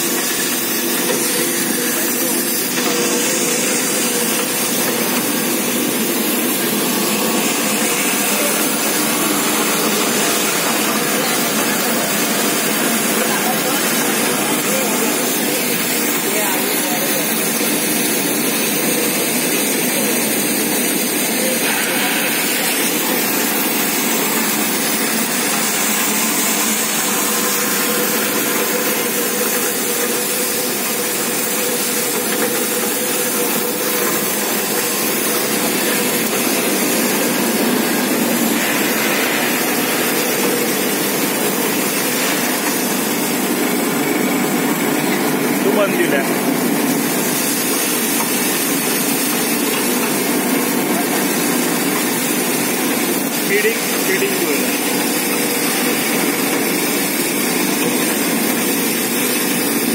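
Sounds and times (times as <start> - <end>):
pulveriser grinding plastic chips: 0.0 - 59.9.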